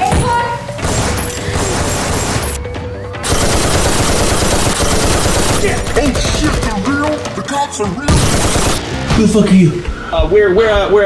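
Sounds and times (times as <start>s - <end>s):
rapid automatic gunfire: 0.8s - 2.6s, 3.2s - 7.0s, 8.1s - 8.9s.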